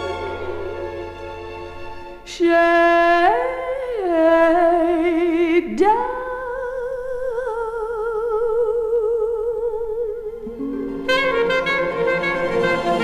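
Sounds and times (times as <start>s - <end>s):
woman singing with vibrato: 0.0s - 1.2s, 2.2s - 10.6s
faint backing music: 0.0s - 6.2s, 9.8s - 13.0s.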